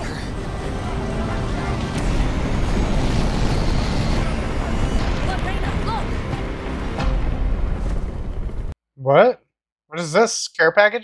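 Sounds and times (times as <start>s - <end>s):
aircraft flying overhead: 0.0s - 8.6s.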